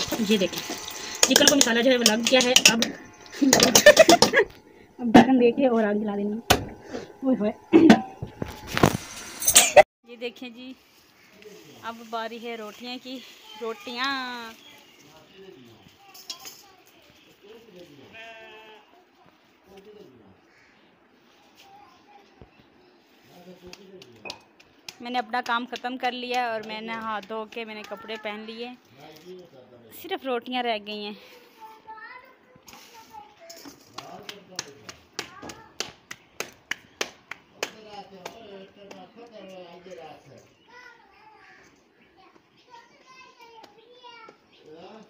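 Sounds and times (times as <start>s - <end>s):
farm animal bleating: 18.0s - 19.0s
hands slapping dough: 34.0s - 39.1s.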